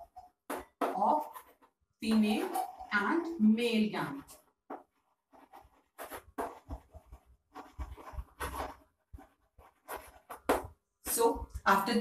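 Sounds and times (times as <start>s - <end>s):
chalk writing on chalkboard: 0.5s - 3.2s, 4.0s - 11.4s.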